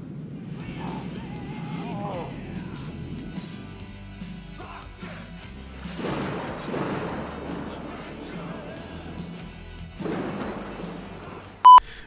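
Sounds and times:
film soundtrack: 0.0 - 11.6
high electronic beep: 11.6 - 11.8.

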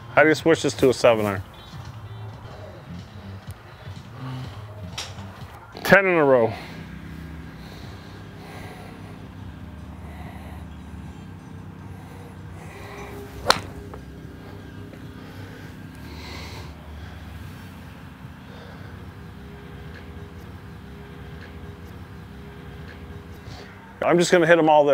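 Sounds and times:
low background rumble: 1.5 - 24.2
golf club striking ball: 12.7 - 16.0.

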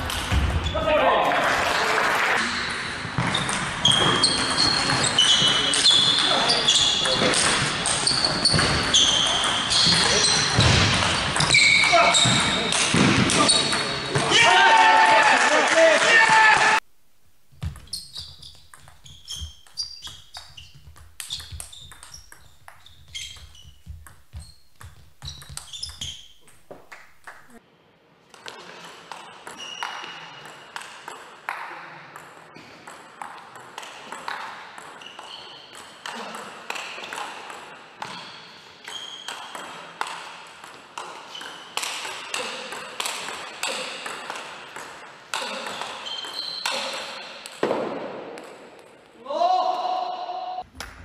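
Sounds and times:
player shouting: 14.3 - 16.8, 49.2 - 50.6.

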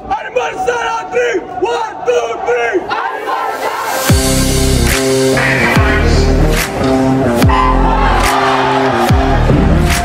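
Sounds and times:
group shouting a chant: 1.0 - 4.1, 7.4 - 9.5.

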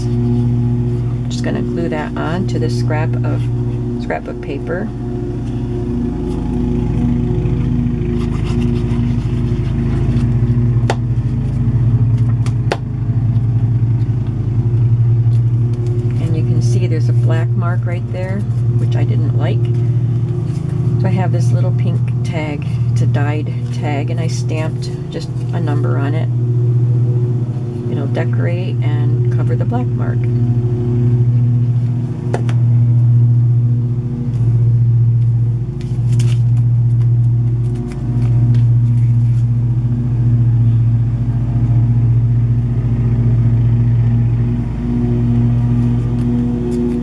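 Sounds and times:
loud low hum: 0.0 - 47.0.

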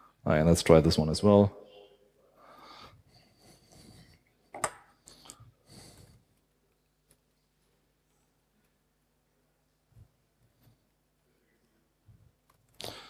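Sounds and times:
man breathing: 1.7 - 4.4, 5.0 - 6.4, 12.8 - 13.0.

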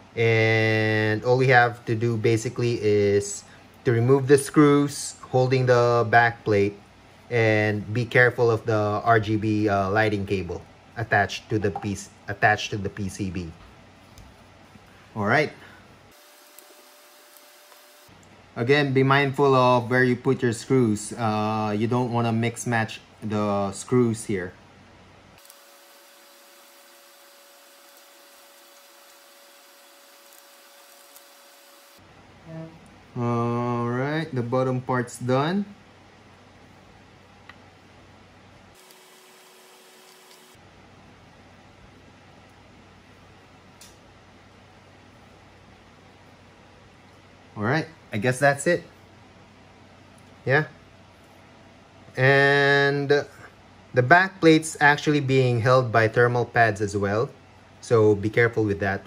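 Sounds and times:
low hiss and hum: 0.0 - 59.0.

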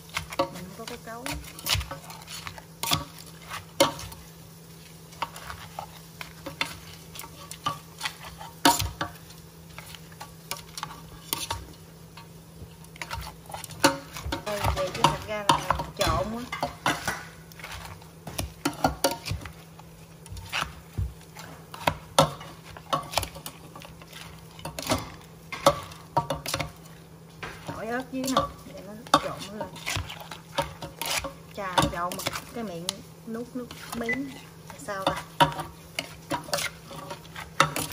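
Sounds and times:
wet mashing: 0.0 - 4.2, 12.6 - 37.9
spoon tossing salad: 0.0 - 37.9.

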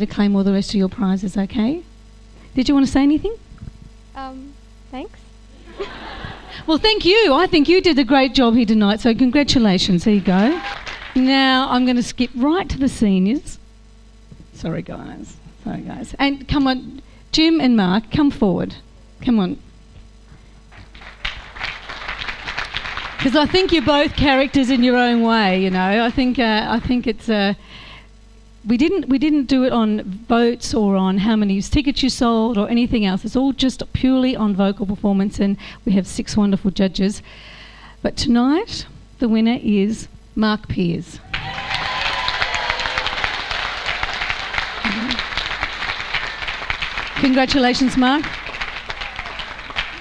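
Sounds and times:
audience applauding: 10.0 - 11.3, 20.7 - 27.0, 41.2 - 50.0.

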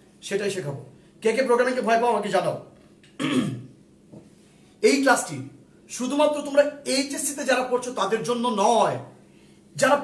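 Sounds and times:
man speaking: 4.8 - 9.1, 9.8 - 10.0.

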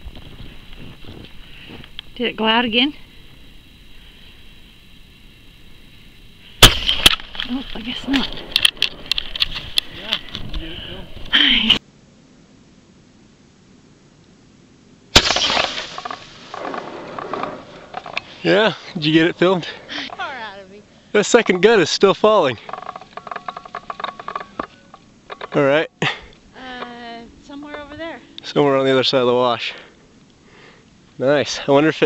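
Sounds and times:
faint steady hiss: 0.0 - 32.0
people talking: 2.2 - 3.0, 7.4 - 8.5, 18.4 - 22.6, 26.6 - 29.8
sharp clicks and crackles: 6.6 - 10.6, 22.7 - 25.6.

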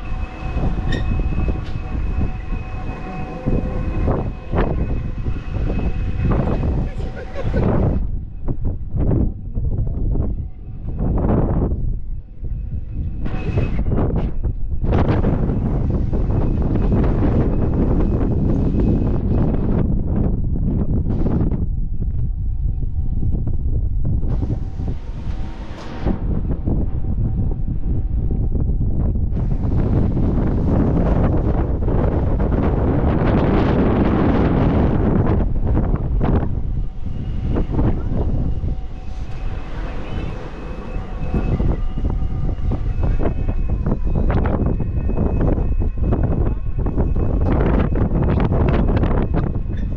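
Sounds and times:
wind buffeting microphone: 0.0 - 49.9.

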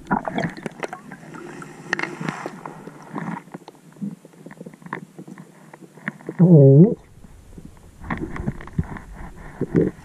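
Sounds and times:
faint underwater clicks: 0.0 - 6.4.

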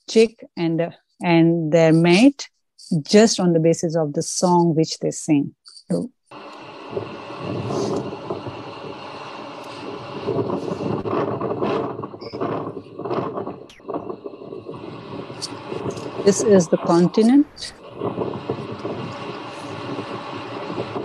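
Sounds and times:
ship rumble at sea: 6.3 - 21.0
wind buffeting microphone: 6.4 - 21.0.

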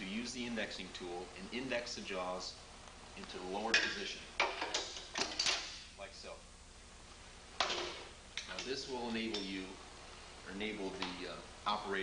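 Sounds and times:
metal clunks and clicks: 3.8 - 5.7.

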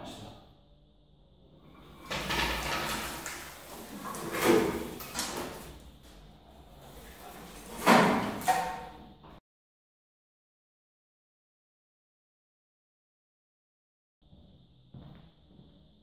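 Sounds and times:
creaking and scraping: 1.7 - 9.0.

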